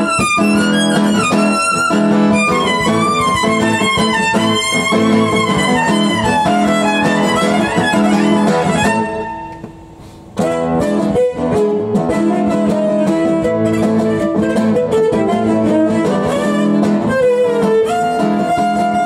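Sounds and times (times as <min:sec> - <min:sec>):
acoustic guitar: 0:00.0 - 0:19.0
fiddle: 0:00.0 - 0:19.0.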